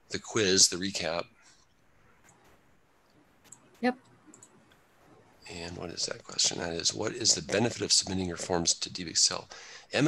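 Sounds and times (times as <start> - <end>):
faint computer mouse clicks: 4.3 - 4.8.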